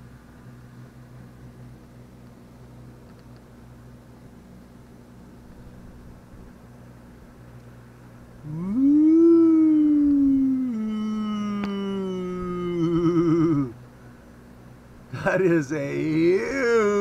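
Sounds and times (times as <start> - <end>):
faint steady hum: 0.0 - 17.0
man screaming in fright: 8.4 - 13.8, 16.4 - 17.0.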